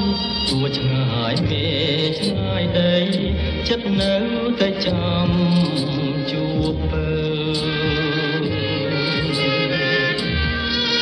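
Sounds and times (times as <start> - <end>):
held melody notes: 0.0 - 11.0
stepping bass line: 0.0 - 11.0.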